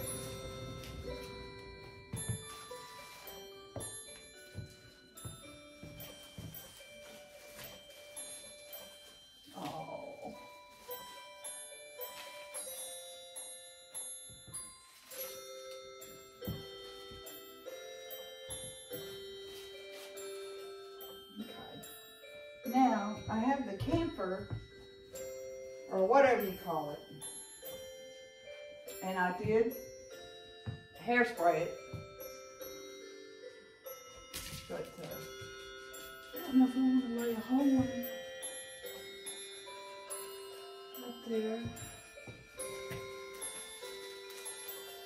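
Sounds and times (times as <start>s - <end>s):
music box bell melody: 0.0s - 45.0s
woman talking: 22.7s - 24.6s, 25.9s - 27.1s, 29.0s - 29.8s, 31.0s - 31.8s, 34.7s - 35.2s, 36.4s - 38.0s, 41.0s - 41.8s.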